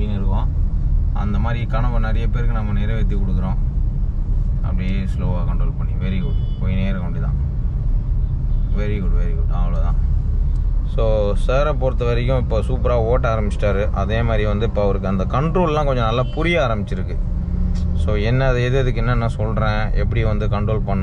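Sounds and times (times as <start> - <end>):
man talking: 0.0 - 0.5, 1.2 - 3.6, 4.6 - 7.4, 8.7 - 10.0, 10.9 - 17.2, 18.0 - 21.0
car engine and road noise: 0.0 - 21.0.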